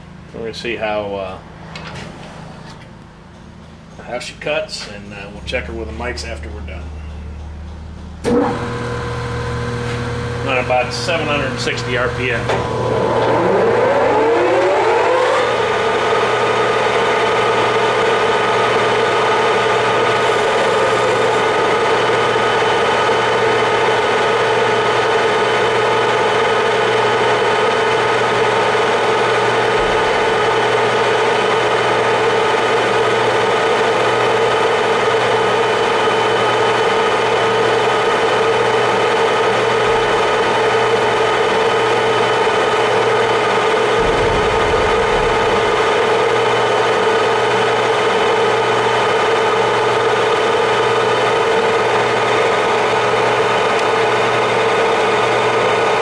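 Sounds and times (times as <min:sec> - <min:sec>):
lathe running with gear hum: 0:08.2 - 0:56.0.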